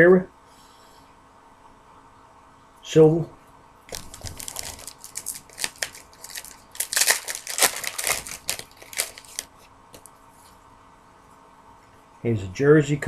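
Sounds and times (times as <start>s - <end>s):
plastic wrappers crinkling: 3.9s - 10.1s.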